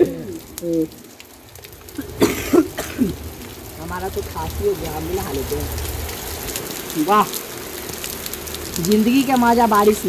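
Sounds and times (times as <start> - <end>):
person coughing: 2.0 - 3.2.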